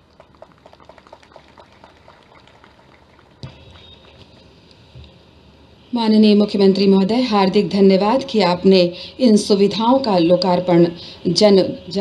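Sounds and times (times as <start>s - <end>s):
audience clapping: 0.0s - 4.5s.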